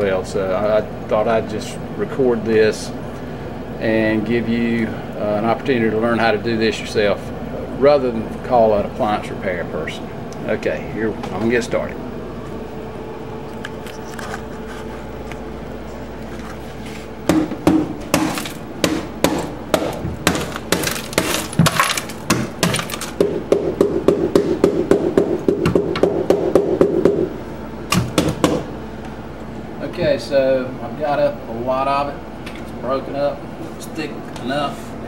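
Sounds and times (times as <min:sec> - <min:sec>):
hammer breaking up ice: 0:18.2 - 0:23.3.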